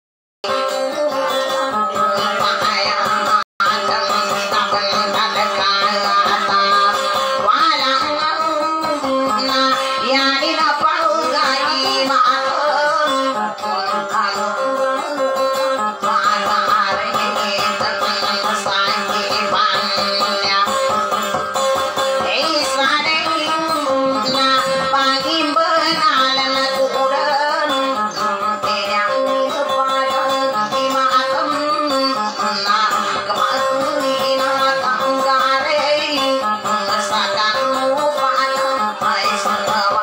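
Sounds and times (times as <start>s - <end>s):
acoustic guitars plucking: 0.4s - 40.0s
woman singing: 0.4s - 40.0s.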